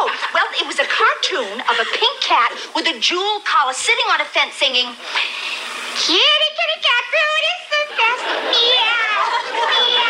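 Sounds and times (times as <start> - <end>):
studio audience laughing: 0.0 - 2.6, 7.8 - 10.0.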